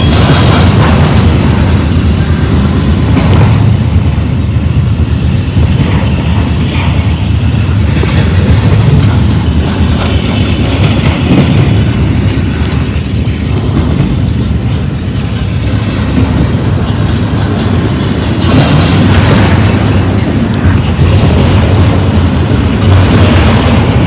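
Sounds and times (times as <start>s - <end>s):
train cars clacking: 0.0s - 24.0s
train wheels rumbling on rail: 0.0s - 24.0s.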